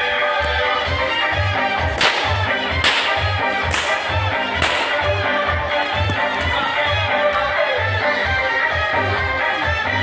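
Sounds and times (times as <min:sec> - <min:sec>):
whip cracking: 0:02.0 - 0:05.1.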